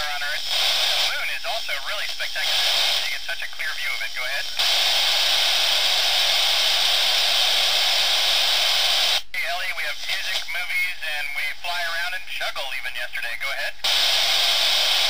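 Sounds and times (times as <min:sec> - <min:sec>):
man's voice over radio: 0:00.0 - 0:04.6, 0:09.3 - 0:13.8
radio static hiss: 0:00.0 - 0:15.0.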